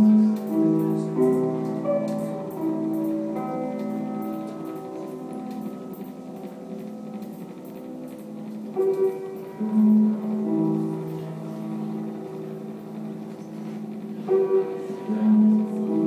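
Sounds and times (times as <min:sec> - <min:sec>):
ambient electronic music: 0:00.0 - 0:16.0.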